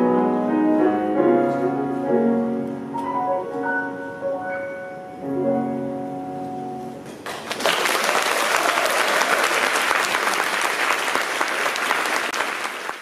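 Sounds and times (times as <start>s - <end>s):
audience applauding: 7.2s - 13.0s.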